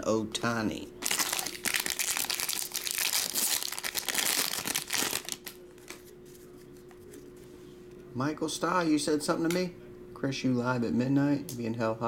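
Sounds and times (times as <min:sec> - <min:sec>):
foil wrapper tearing and crinkling: 0:01.0 - 0:06.0.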